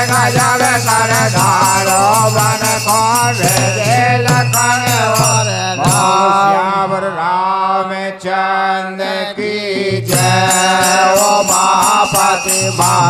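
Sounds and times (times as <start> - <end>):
jingling hand percussion: 0.0 - 7.0, 9.1 - 13.0
men singing devotional chant: 0.0 - 13.0.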